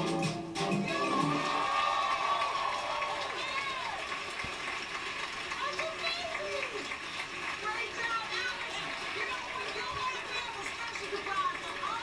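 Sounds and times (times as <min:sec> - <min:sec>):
backing music: 0:00.0 - 0:01.8
audience cheering and applauding: 0:00.0 - 0:12.0.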